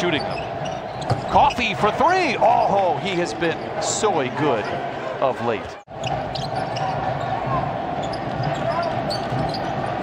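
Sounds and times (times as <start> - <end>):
arena crowd hum: 0.0 - 10.0.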